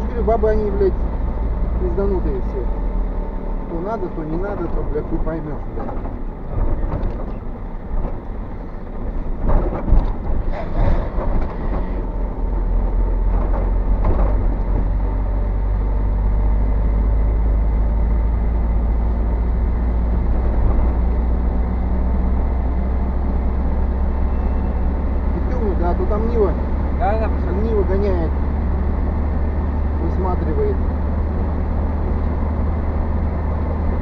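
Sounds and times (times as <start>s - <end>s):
vehicle engine and tyres rumbling: 0.0s - 34.0s
knocks and rattles: 4.3s - 12.2s, 12.8s - 15.2s.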